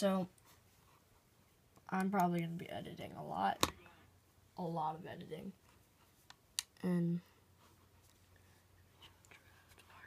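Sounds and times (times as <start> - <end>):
faint room hum: 0.0 - 10.0
faint whispering: 8.9 - 10.0.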